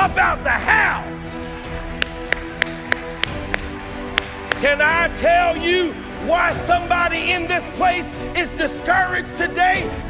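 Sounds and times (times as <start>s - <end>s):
held music chords: 1.7s - 5.6s
hand claps: 2.0s - 4.7s.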